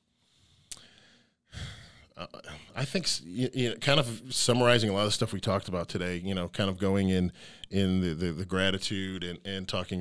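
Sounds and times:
man breathing into microphone: 0:00.1 - 0:02.1, 0:07.4 - 0:07.7.

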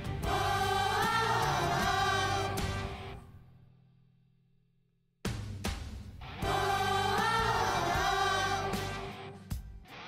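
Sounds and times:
children's choir singing: 0:00.1 - 0:03.2, 0:06.4 - 0:09.4.

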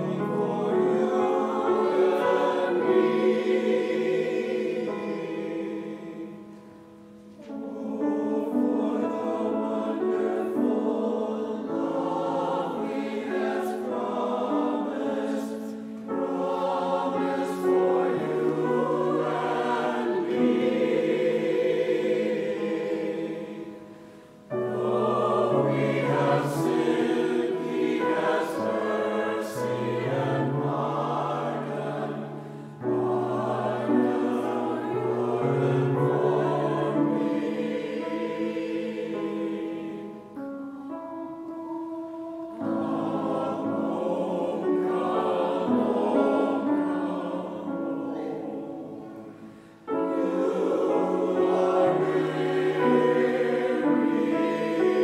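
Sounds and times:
grand piano accompaniment: 0:00.0 - 0:55.0
mixed choir singing: 0:00.0 - 0:55.0.

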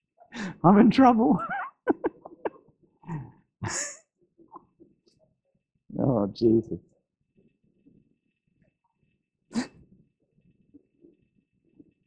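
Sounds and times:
faint breathing: 0:00.2 - 0:00.6
man's stifled laugh: 0:01.4 - 0:04.0.

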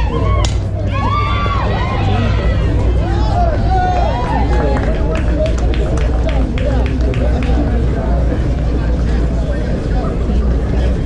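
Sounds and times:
low rumble: 0:00.0 - 0:11.0
people talking and calling out: 0:00.0 - 0:11.0.

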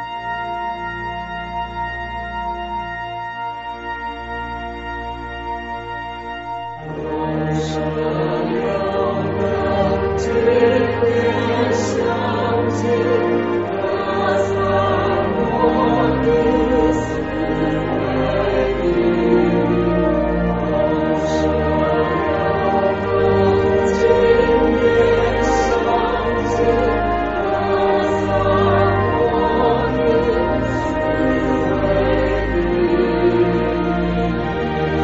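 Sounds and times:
low steady accompaniment: 0:00.0 - 0:35.0
choir singing held notes: 0:06.8 - 0:35.0.

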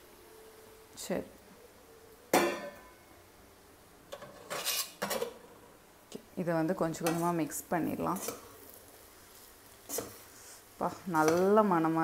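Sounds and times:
metal spatula scraping pan: 0:04.1 - 0:05.4, 0:07.0 - 0:07.4, 0:08.1 - 0:08.5, 0:09.8 - 0:11.6
person speaking: 0:10.8 - 0:12.0.

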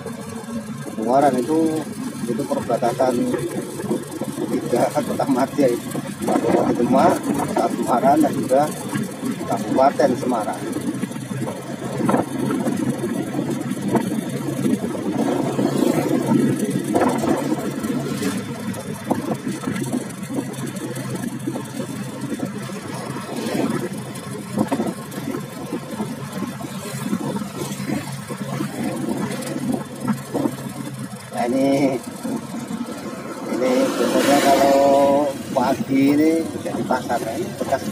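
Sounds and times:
rushing road noise: 0:00.0 - 0:37.9
vehicle engine running: 0:00.0 - 0:37.9.

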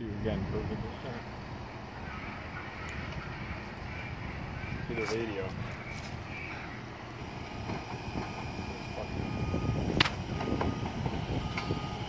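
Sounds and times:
rail vehicle rumbling: 0:00.0 - 0:12.0.

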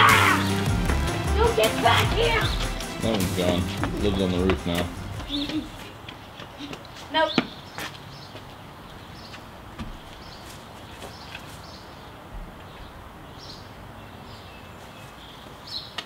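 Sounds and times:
boy speaking: 0:01.3 - 0:02.6.

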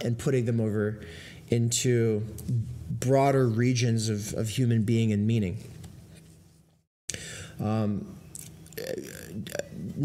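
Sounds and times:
man mumbling: 0:08.8 - 0:10.0.

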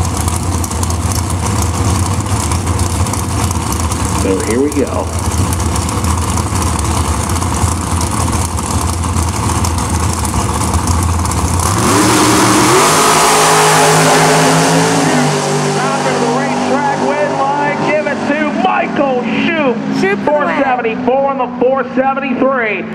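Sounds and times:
dragster engines: 0:00.0 - 0:22.9
announcer over loudspeaker: 0:12.4 - 0:22.9.

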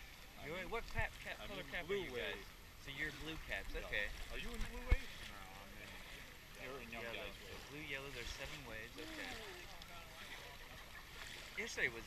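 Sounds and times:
water: 0:00.0 - 0:12.0.

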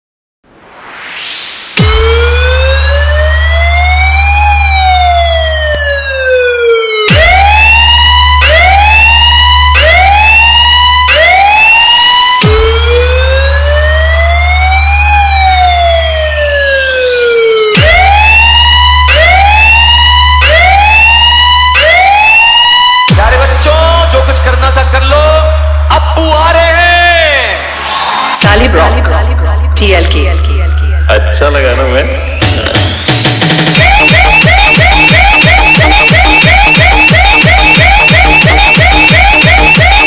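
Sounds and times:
deep bass drone: 0:00.7 - 0:11.6, 0:12.4 - 0:17.0, 0:17.8 - 0:21.8, 0:23.1 - 0:26.8, 0:27.6 - 0:32.8
police siren wailing and yelping: 0:01.3 - 0:23.6, 0:33.6 - 0:40.0.

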